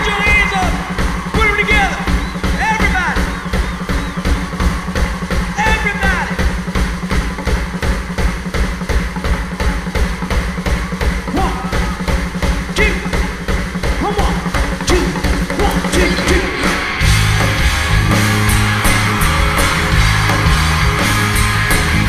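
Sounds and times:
heavy bass drum beat: 0:00.0 - 0:22.0
live rock band: 0:00.0 - 0:22.0.

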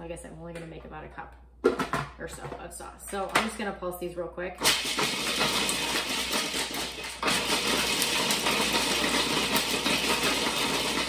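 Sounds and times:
food processor chopping nuts: 0:04.6 - 0:11.0.

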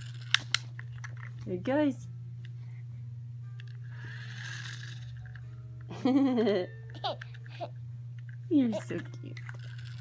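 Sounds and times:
wind-up toy whirring: 0:00.0 - 0:01.3, 0:03.6 - 0:05.5, 0:06.3 - 0:10.0
steady low hum: 0:00.0 - 0:10.0.

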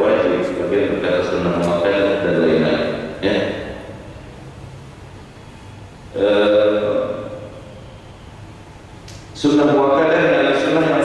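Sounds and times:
man speaking through a microphone: 0:00.0 - 0:03.9, 0:06.2 - 0:07.4, 0:09.4 - 0:11.0.

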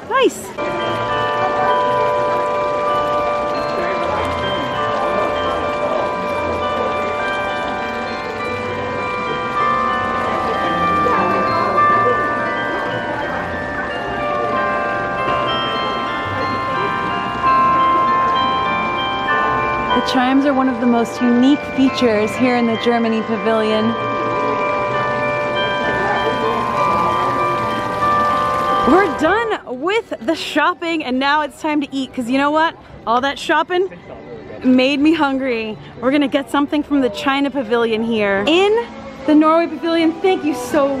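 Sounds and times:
clock tower bells chiming a tune: 0:00.1 - 0:33.9, 0:34.6 - 0:41.0.

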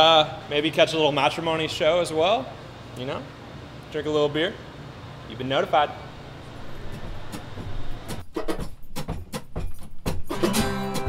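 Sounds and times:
brewery equipment humming: 0:00.0 - 0:11.0.

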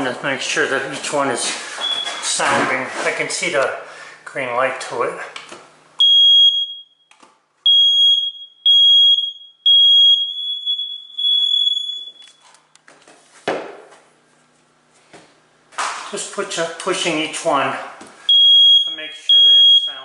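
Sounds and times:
smoke alarm beeps: 0:01.8 - 0:02.3, 0:06.0 - 0:12.7, 0:18.2 - 0:20.0.

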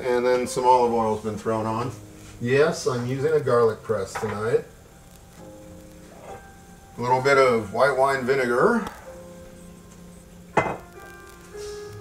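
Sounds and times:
quiet background music: 0:00.0 - 0:12.0
bottle knocking on counter: 0:10.6 - 0:10.8.

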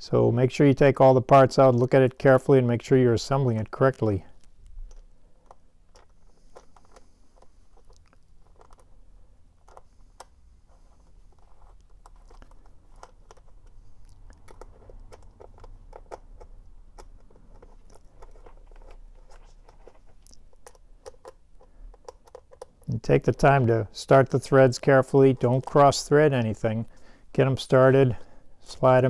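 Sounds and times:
gloved hand handling noise: 0:03.4 - 0:29.0
screwdriver ticking and scraping: 0:11.3 - 0:23.0.

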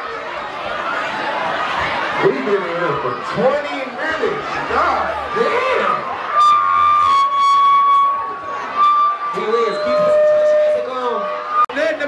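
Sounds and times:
club crowd voices: 0:00.0 - 0:12.0
steady high tone: 0:06.2 - 0:11.8.

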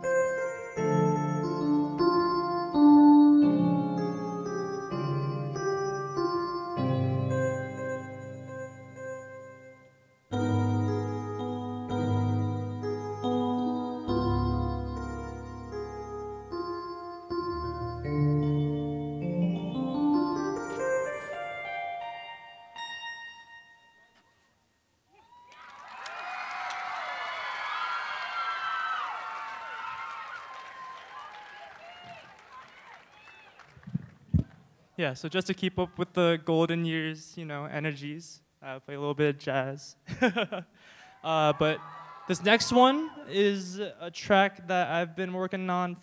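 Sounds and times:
jazz piano on electronic keyboard: 0:00.0 - 0:24.0
audience clapping and cheering: 0:25.2 - 0:34.2, 0:41.0 - 0:43.3.

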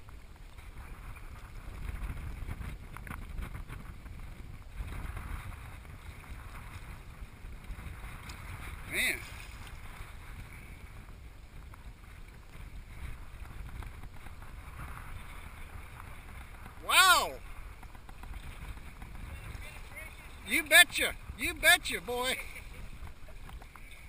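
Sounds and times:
wind rumble on microphone: 0:00.0 - 0:24.0
shallow seawater splashing: 0:00.1 - 0:24.0.

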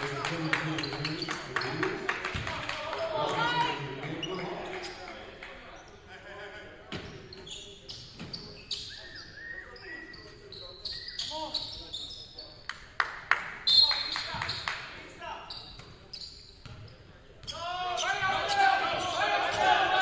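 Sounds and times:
sneakers squeaking: 0:00.1 - 0:02.4, 0:03.2 - 0:06.1, 0:06.9 - 0:12.7, 0:13.6 - 0:20.0
players calling out: 0:17.4 - 0:20.0.

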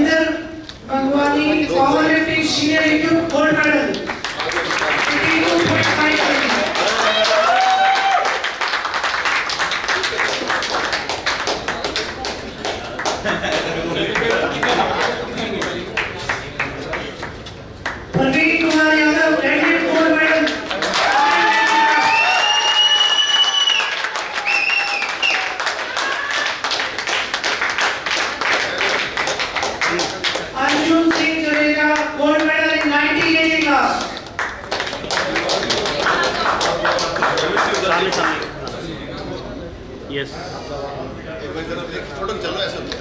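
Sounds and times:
crowd clapping: 0:03.3 - 0:18.7, 0:19.5 - 0:38.9.

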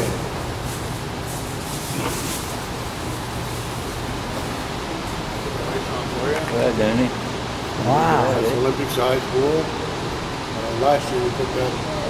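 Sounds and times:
ventilation hum and hiss: 0:00.0 - 0:12.0
man saying wow: 0:07.8 - 0:08.7.

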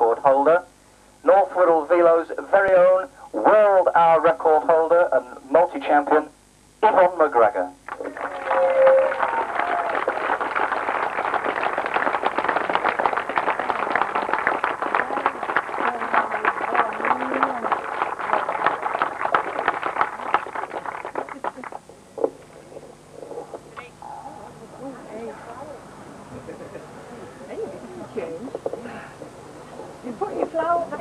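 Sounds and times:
audience applauding: 0:07.9 - 0:21.9
voices: 0:12.8 - 0:20.3, 0:20.9 - 0:31.0.

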